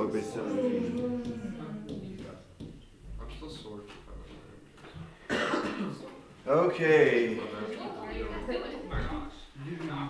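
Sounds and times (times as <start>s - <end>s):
loud cough: 5.3s - 6.1s.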